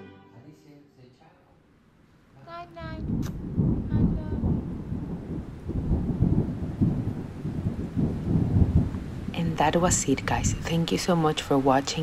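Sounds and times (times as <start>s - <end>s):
heavy rain hissing: 2.4s - 12.0s
rolling thunder: 2.9s - 11.1s.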